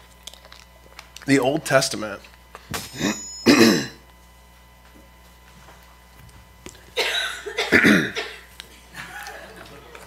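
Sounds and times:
man coughing: 3.0 - 4.0, 7.0 - 8.5.

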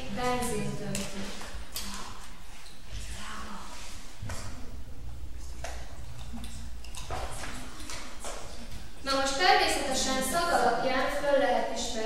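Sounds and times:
low hum: 0.0 - 9.1.

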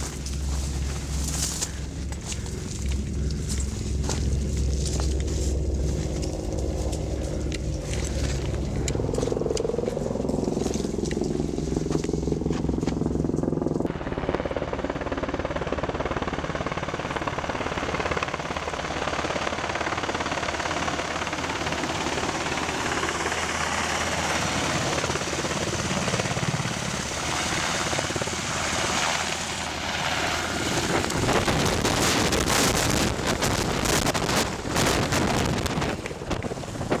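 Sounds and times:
low engine drone: 0.0 - 37.0.

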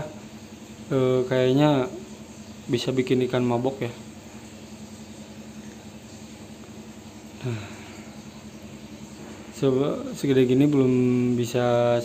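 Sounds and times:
air pump humming: 0.0 - 12.0.

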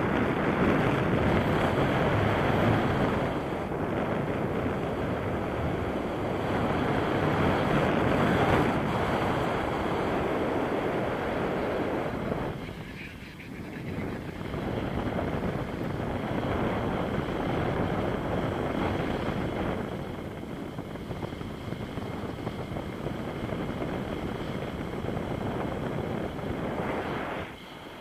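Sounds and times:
wind buffeting microphone: 0.0 - 28.0.

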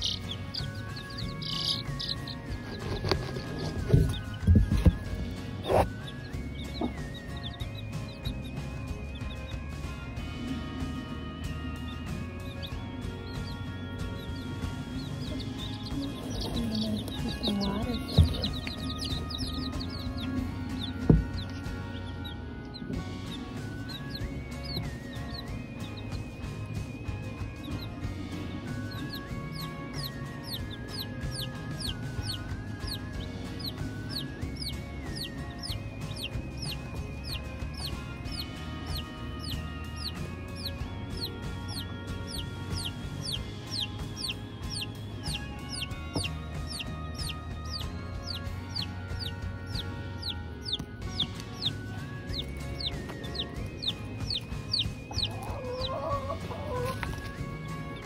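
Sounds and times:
background music: 0.0 - 58.0
chicks peeping: 0.0 - 58.0.

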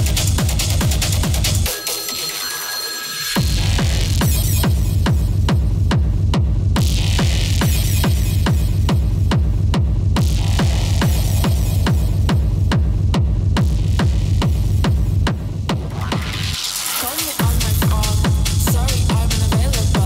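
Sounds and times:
kick drum: 0.0 - 1.7, 3.4 - 20.0
pulsing bass line: 0.0 - 1.9, 3.4 - 20.0
dark techno music: 0.0 - 20.0.

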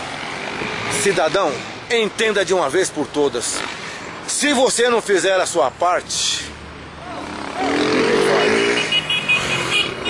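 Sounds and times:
street traffic: 0.0 - 10.0
vehicle engine running nearby: 5.5 - 10.0.

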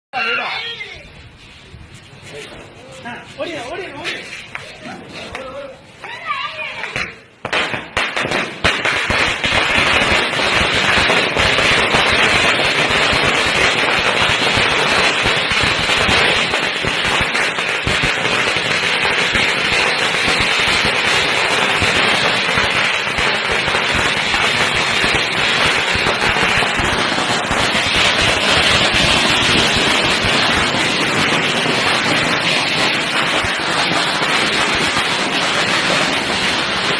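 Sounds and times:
firecrackers crackling: 0.2 - 36.9.

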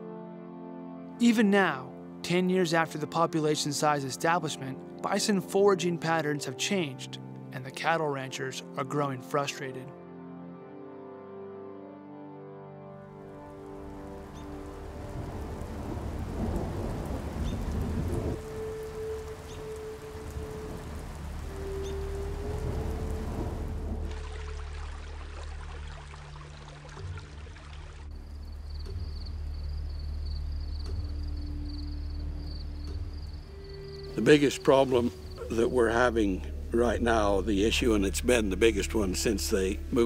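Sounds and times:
steady rain: 13.2 - 40.0
thunder rumbling: 13.8 - 24.6.

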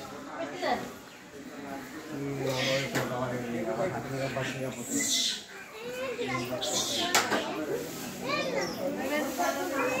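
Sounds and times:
people talking and calling: 0.0 - 10.0
children's voices: 5.4 - 10.0.

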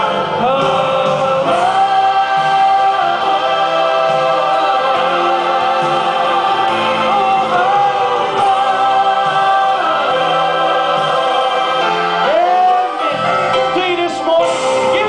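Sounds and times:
choir singing gospel: 0.0 - 15.0.

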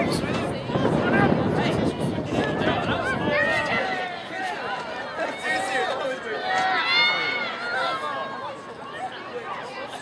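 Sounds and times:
quiet chatter: 0.0 - 10.0
voices shouting and calling: 0.0 - 10.0.

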